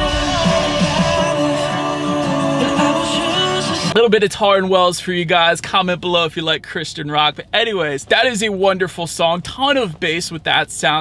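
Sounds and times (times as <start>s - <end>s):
rock song over car speakers: 0.0s - 4.0s.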